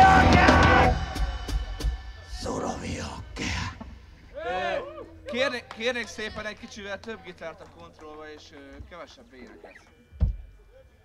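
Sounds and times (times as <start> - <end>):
punk rock band playing: 0.0 - 4.1.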